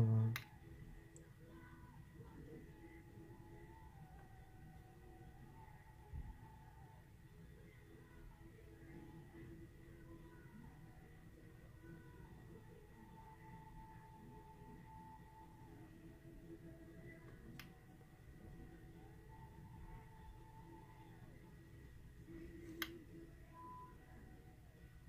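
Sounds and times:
faint steady tones: 0.0 - 25.0.

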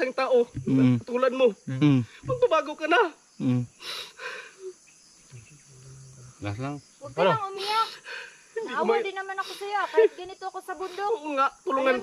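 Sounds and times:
person speaking quietly: 0.6 - 1.0
person murmuring: 0.6 - 1.1, 1.7 - 2.4, 3.4 - 3.7.

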